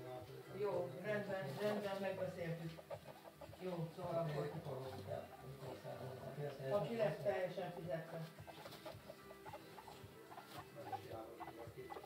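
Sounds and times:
guinea pigs squeaking: 0.7 - 12.0.

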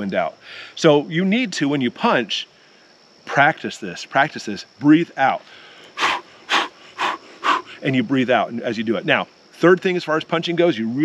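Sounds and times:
man breathing out sharply: 0.4 - 0.8, 5.4 - 7.8.

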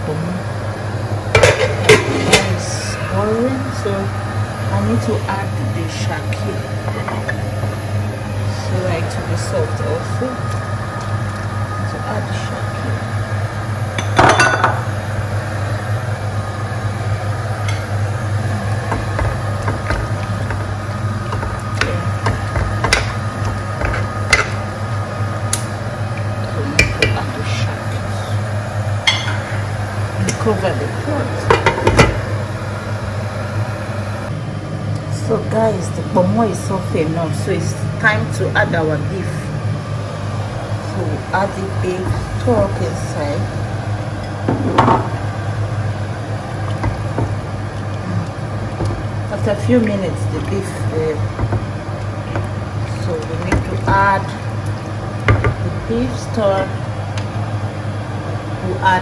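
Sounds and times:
steady low hum: 0.0 - 59.0
utensils clinking against cooking pot: 29.0 - 29.6.

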